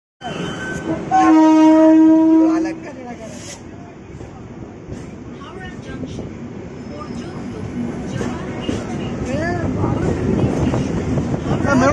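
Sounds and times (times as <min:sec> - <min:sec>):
train running on track: 0:00.2 - 0:11.9
loud train horn: 0:00.9 - 0:02.8.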